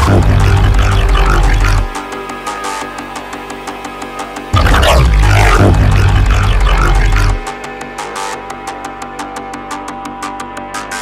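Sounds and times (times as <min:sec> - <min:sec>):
deep sub-bass: 0:00.0 - 0:02.0, 0:04.5 - 0:07.5
distorted synthesizer bass growl: 0:00.0 - 0:02.1, 0:04.5 - 0:07.6.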